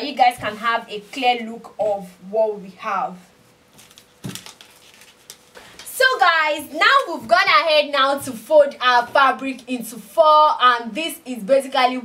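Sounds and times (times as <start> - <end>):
satin fabric rustling: 3.4 - 5.7.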